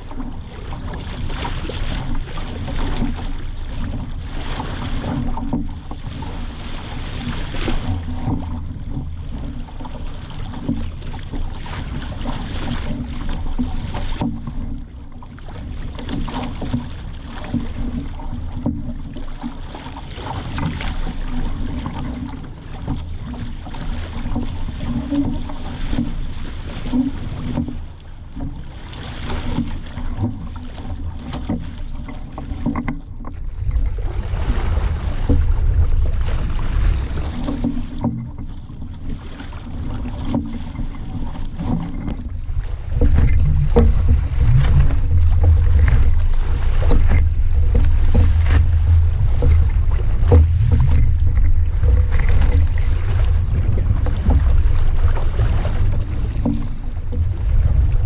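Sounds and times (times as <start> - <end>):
water slapping against hull: 0.0 - 58.0
wind rumbling on microphone: 0.0 - 58.0.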